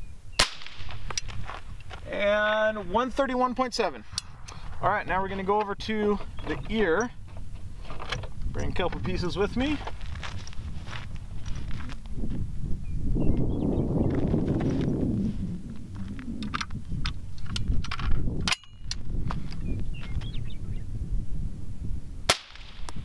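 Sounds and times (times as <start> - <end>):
rustle: 0.0 - 3.0, 9.5 - 12.5
wind rumble on microphone: 0.0 - 23.0
rifle handling clicks and knocks: 0.7 - 2.0, 5.5 - 10.5, 16.4 - 19.7.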